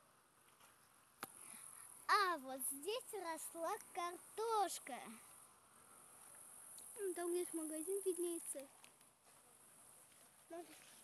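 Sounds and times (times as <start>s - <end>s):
insects chirring: 1.4s - 10.0s.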